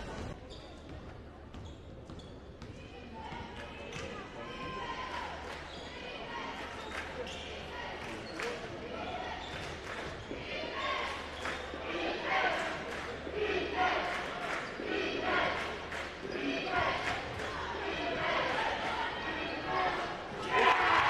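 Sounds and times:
voices of players and spectators: 0.0 - 21.0.

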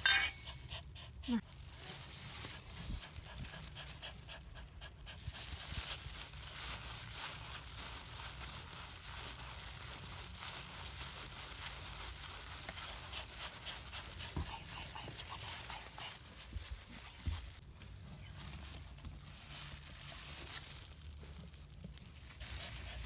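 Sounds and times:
dog panting hard: 0.4 - 1.4, 2.7 - 5.9, 12.8 - 16.5, 22.4 - 23.0.

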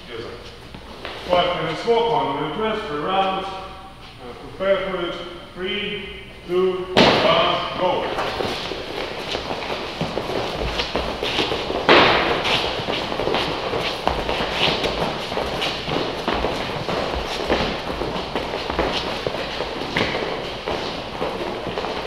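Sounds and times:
loud thump: 7.0 - 7.5
hands and feet thudding on rubber floor: 8.0 - 22.0.

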